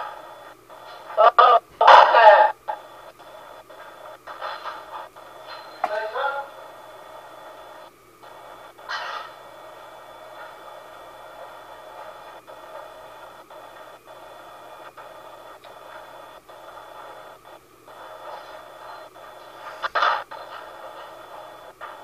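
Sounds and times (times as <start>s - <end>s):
faint steady tones: 0.0s - 22.0s
static hiss: 0.0s - 22.0s.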